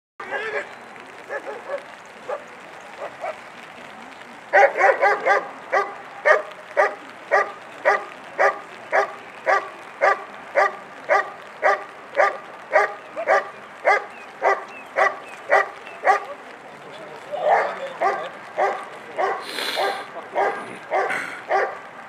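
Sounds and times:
dog barking: 0:00.2 - 0:02.4, 0:03.0 - 0:03.4, 0:04.5 - 0:16.4, 0:17.4 - 0:21.9.

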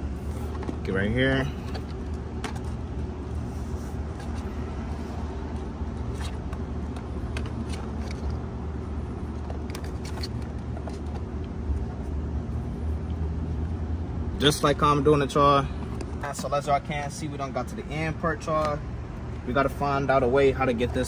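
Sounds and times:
steady low hum: 0:00.0 - 0:21.0.

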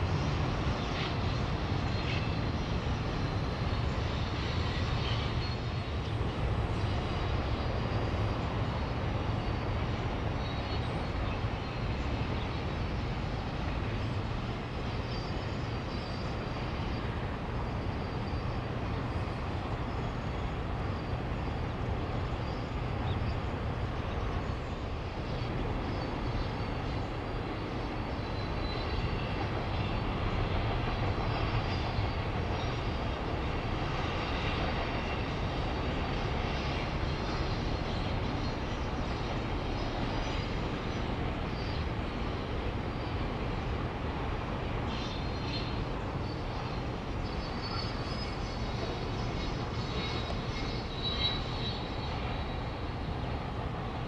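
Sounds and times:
distant freight train rumbling: 0:00.0 - 0:54.0.

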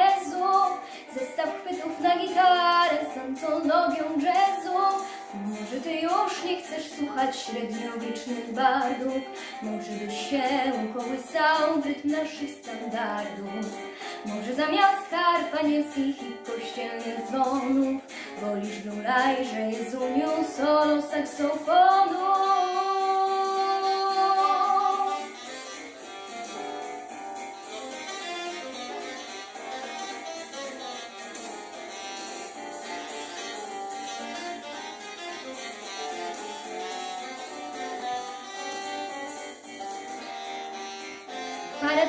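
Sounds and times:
jazz backing track with keyboard: 0:00.0 - 0:42.0
girl singing a long note: 0:22.2 - 0:25.3.

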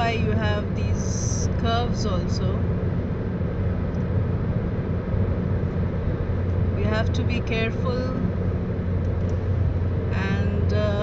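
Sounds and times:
car road and engine drone: 0:00.0 - 0:11.0
constant low hum: 0:00.0 - 0:11.0.

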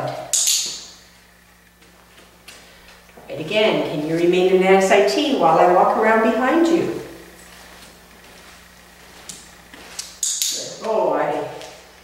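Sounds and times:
faint steady hum: 0:00.0 - 0:12.0
footsteps on foam mats: 0:01.2 - 0:03.2, 0:07.3 - 0:10.2
short scuffing: 0:07.3 - 0:10.2.

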